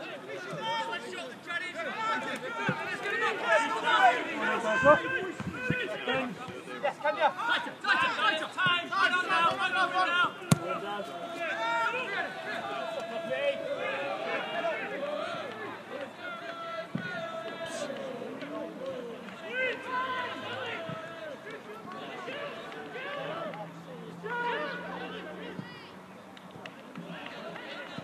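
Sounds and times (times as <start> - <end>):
people shouting and calling: 0.0 - 26.0
football being kicked: 10.4 - 10.8.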